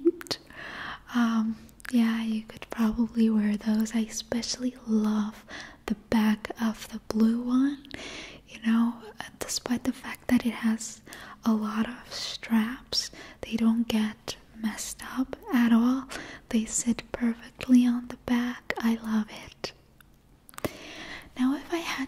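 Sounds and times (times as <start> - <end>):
woman whispering: 0.0 - 5.4, 8.5 - 19.8, 21.3 - 22.0.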